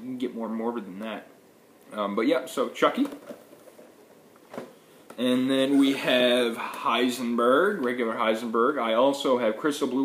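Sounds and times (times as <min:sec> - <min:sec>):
boxed figures rustling and tapping: 0:02.8 - 0:05.3.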